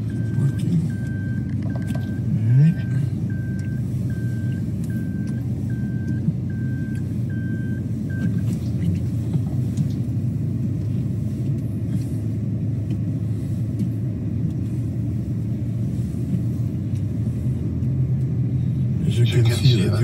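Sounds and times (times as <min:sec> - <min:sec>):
car engine and road rumble: 0:00.0 - 0:20.0.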